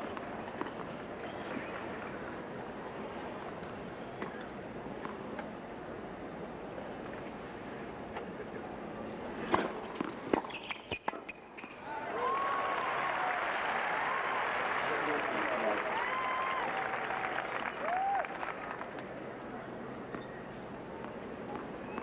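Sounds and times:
crowd applause: 12.1 - 18.9.

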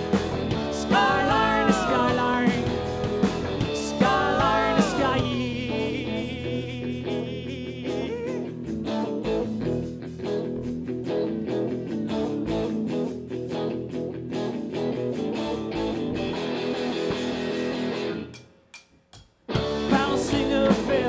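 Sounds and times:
live rock band playing: 0.0 - 18.4, 19.5 - 21.0.

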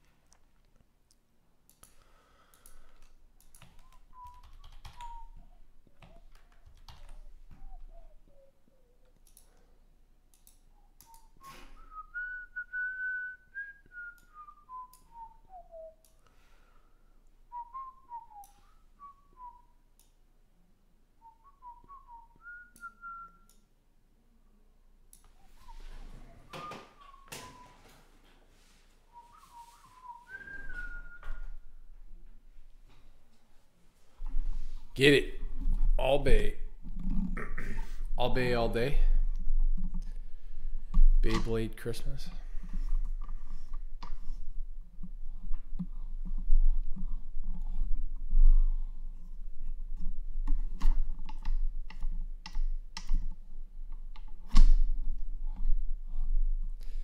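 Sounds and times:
low electrical hum: 0.0 - 57.0
person whistling a tune: 3.8 - 9.1, 10.8 - 16.1, 17.5 - 19.8, 21.2 - 23.5, 25.5 - 27.9, 29.1 - 31.8.

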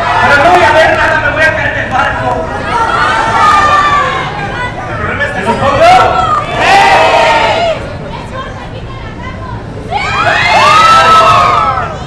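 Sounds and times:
crowd murmur: 2.3 - 12.0
high-pitched shrieks and cheers: 2.6 - 4.4, 9.9 - 12.0.

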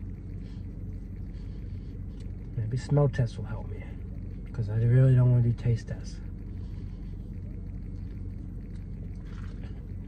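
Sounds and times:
car engine rumbling inside cabin: 0.0 - 10.0.

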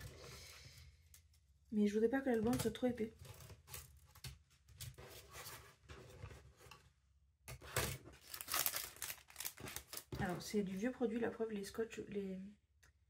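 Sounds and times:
packaging crinkling and tearing: 7.7 - 10.2.

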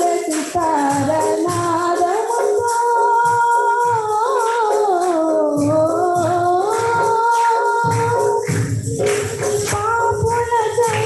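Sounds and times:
drum beats: 0.0 - 11.0
jingling tambourine: 0.0 - 11.0
woman singing into a microphone: 0.0 - 11.0.

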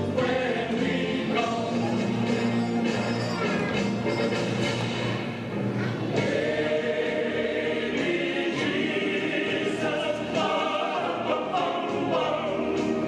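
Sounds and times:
choir singing held notes: 0.0 - 4.9, 6.0 - 13.0.

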